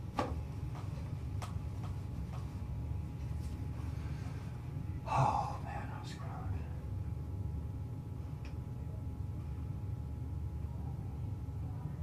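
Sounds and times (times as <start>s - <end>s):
low room hum: 0.0s - 12.0s
man breathing: 3.7s - 6.0s.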